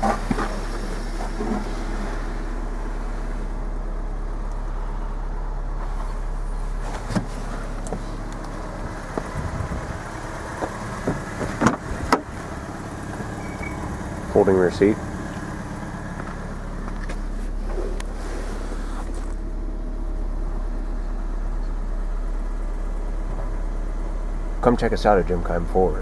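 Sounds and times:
car engine idling: 0:00.0 - 0:26.0.

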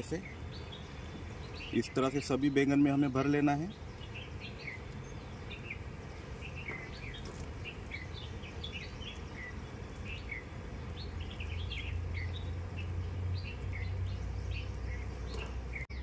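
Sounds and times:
small birds chirping: 0:00.0 - 0:16.0.

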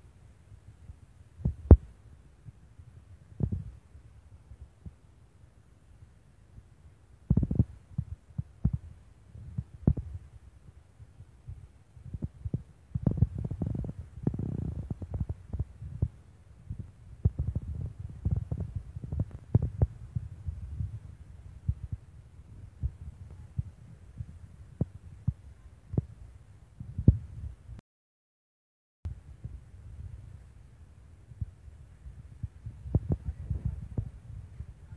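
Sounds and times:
low thumps on microphone: 0:01.4 - 0:01.9, 0:03.4 - 0:03.8, 0:07.3 - 0:10.3, 0:11.5 - 0:26.1, 0:26.8 - 0:27.8, 0:31.4 - 0:34.9.

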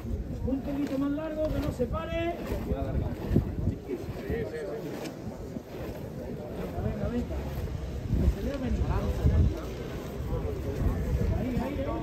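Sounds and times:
feet shuffling on street: 0:00.0 - 0:12.0.

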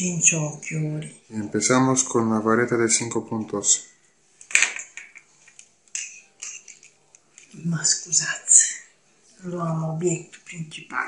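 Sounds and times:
small items tapping on wooden table: 0:04.4 - 0:07.5.

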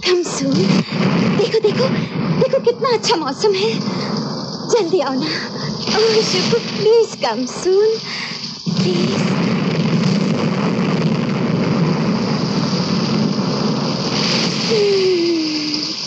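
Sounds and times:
rush of wind and rain: 0:00.0 - 0:16.0.

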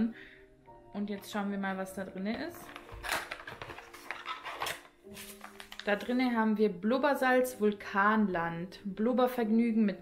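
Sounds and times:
packet crinkling and rustling: 0:02.6 - 0:06.3.

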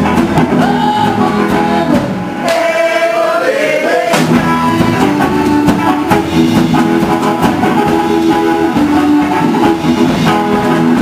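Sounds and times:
electric guitar: 0:00.0 - 0:02.5, 0:04.2 - 0:11.0
bass guitar: 0:00.0 - 0:03.2, 0:03.9 - 0:11.0
person singing: 0:00.0 - 0:06.2
drums: 0:00.0 - 0:11.0.

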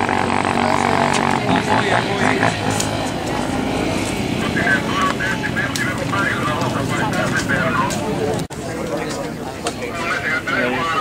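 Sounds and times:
motorcycle engines running: 0:00.0 - 0:10.0
people talking: 0:00.0 - 0:11.0.

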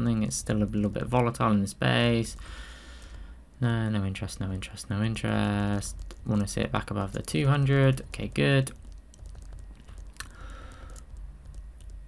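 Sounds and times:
faint low hum: 0:00.0 - 0:12.0
computer keys clicking: 0:05.6 - 0:12.0.

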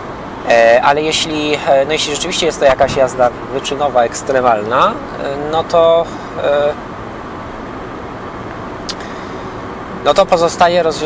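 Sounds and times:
car engine hum: 0:00.0 - 0:11.0
road and tyre noise: 0:00.0 - 0:11.0.

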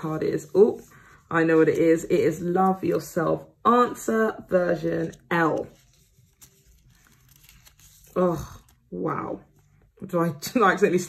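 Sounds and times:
plastic sleeve rustling and crinkling: 0:04.8 - 0:09.0.

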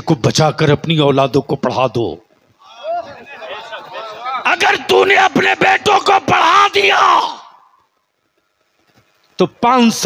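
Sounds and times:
man speaking into a microphone: 0:00.0 - 0:02.3, 0:03.3 - 0:07.4, 0:09.4 - 0:10.0.

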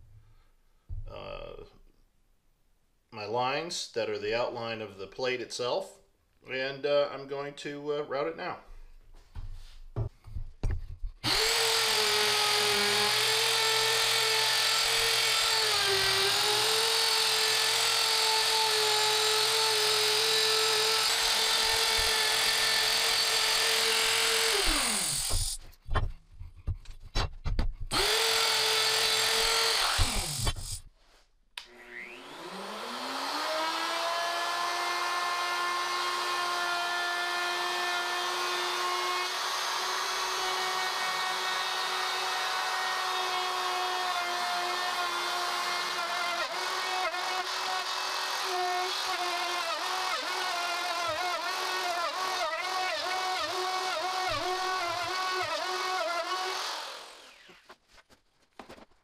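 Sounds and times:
electric router cutting wood: 0:11.2 - 0:25.6, 0:27.9 - 0:30.8, 0:31.6 - 0:57.7
router spinning up whine: 0:11.2 - 0:25.6, 0:27.9 - 0:30.8, 0:31.6 - 0:36.5, 0:44.6 - 0:57.8.

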